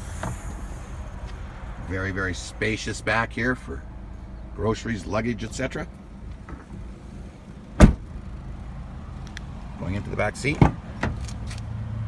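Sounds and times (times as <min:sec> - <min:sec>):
car liftgate slamming: 0:07.8 - 0:08.1.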